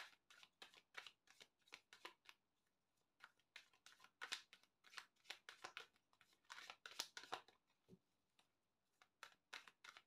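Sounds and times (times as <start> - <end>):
cards being shuffled: 0.0 - 2.4, 3.2 - 7.5, 9.0 - 10.0.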